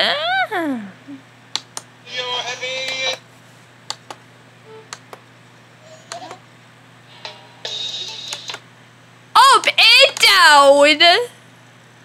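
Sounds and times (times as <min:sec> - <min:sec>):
voices and music through tv speaker: 0:02.0 - 0:03.2.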